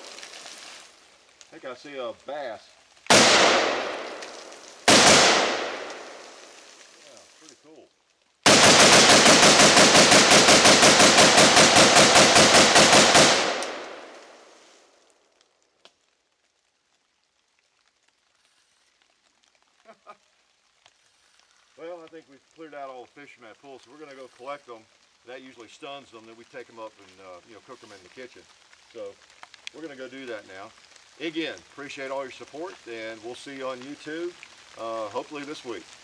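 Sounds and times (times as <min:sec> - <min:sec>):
gunshot echo: 0:03.1 - 0:06.3, 0:08.5 - 0:14.5
rifle gunshots: 0:03.1 - 0:06.3, 0:08.4 - 0:14.4.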